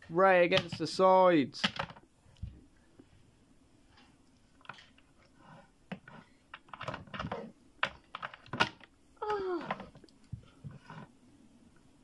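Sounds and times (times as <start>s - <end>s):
plastic figures clicking on shelf: 1.6s - 2.0s, 5.9s - 10.2s.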